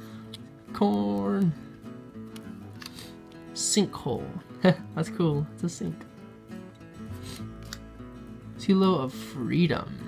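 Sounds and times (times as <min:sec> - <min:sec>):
soft guitar-like background music: 0:00.0 - 0:10.0.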